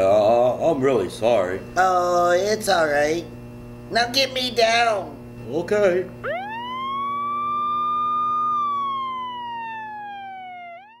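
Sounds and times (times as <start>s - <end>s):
cartoon whistle sliding in pitch: 6.2s - 11.0s.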